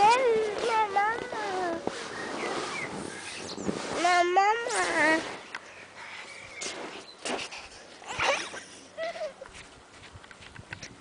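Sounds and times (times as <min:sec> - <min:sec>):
child's wordless voice: 0:00.0 - 0:02.0, 0:04.0 - 0:05.3.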